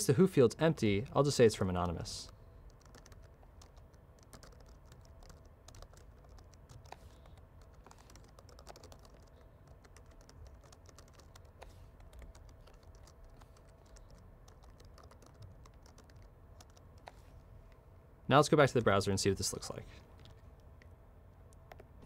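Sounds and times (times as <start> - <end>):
typing on computer keyboard: 2.7 - 17.2.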